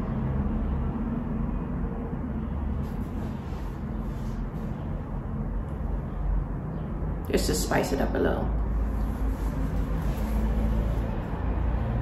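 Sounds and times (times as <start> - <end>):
low rumble with faint hum: 0.0 - 12.0.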